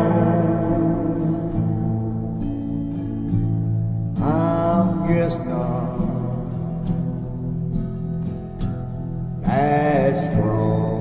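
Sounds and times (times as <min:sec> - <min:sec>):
man singing wordlessly: 0:00.0 - 0:02.3, 0:04.2 - 0:06.8, 0:09.4 - 0:11.0
acoustic guitar chords: 0:00.0 - 0:11.0.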